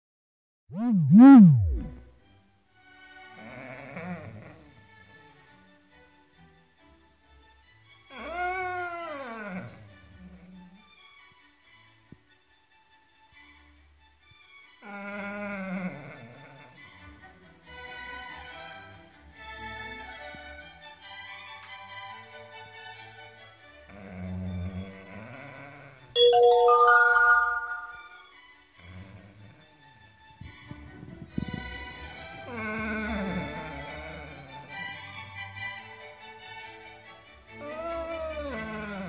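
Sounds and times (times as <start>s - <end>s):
low rising tone: 0.7s - 2.0s
bell-like rising arpeggio: 26.2s - 28.2s.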